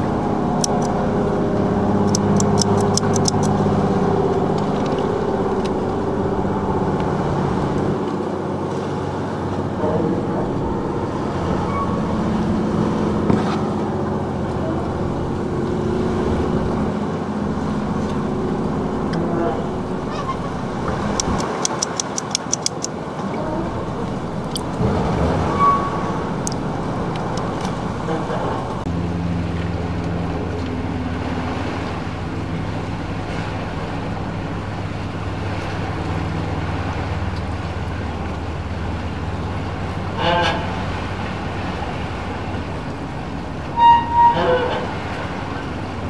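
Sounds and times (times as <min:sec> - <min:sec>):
low engine hum: 0:00.0 - 0:46.0
quick ticks: 0:02.0 - 0:03.5, 0:21.1 - 0:22.9.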